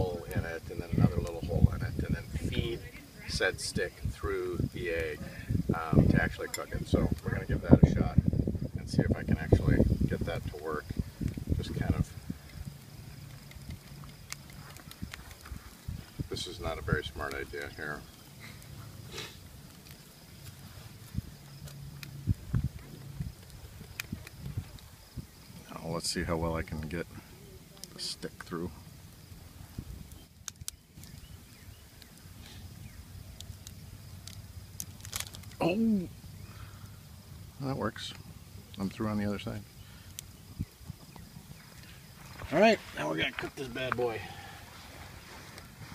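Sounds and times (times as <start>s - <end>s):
faint bird chirps: 30.1s - 33.4s, 35.6s - 37.0s.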